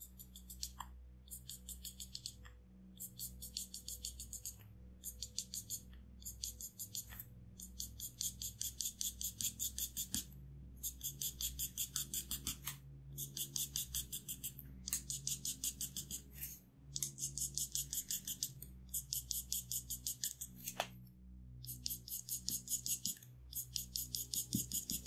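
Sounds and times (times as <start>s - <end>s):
soft background music: 0.0s - 25.0s
marker hatching on paper: 3.0s - 21.0s, 21.6s - 25.0s.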